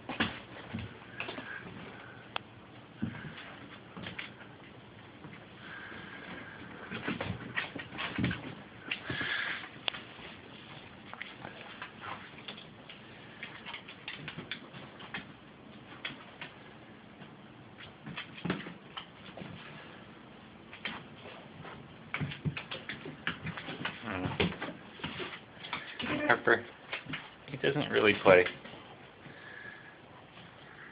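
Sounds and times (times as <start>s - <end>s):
dog claws on hardwood floor: 20.7s - 27.4s.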